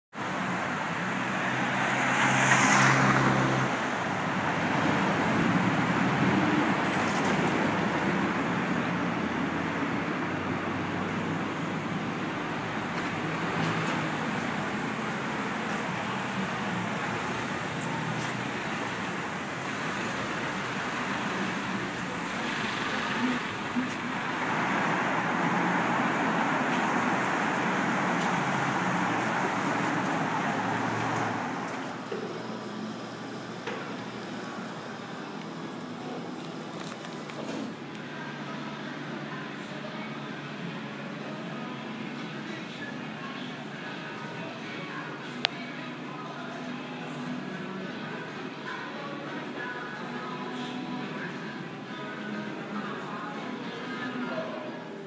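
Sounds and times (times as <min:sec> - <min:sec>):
passing cars: 0:00.1 - 0:55.0
loud vehicle passing: 0:00.2 - 0:36.4.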